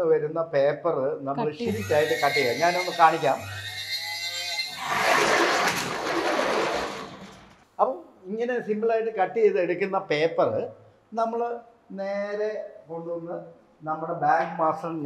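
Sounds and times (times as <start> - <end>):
electric motor humming and whirring: 1.6 - 3.5.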